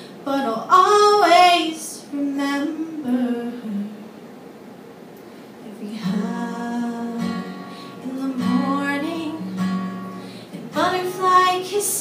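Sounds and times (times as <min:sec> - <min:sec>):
woman singing: 0:00.3 - 0:04.1, 0:05.6 - 0:12.0
acoustic guitar strumming: 0:06.0 - 0:12.0.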